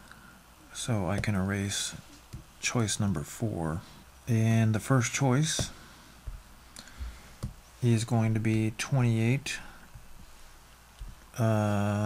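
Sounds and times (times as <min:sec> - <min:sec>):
person speaking: 0:00.7 - 0:05.9, 0:07.8 - 0:10.0
faint clicks and soft taps: 0:10.9 - 0:11.3.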